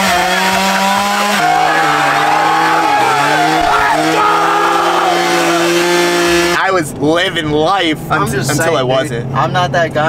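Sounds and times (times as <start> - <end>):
crowd shouting and cheering: 0.0 - 6.6
drink blender droning: 0.0 - 6.6.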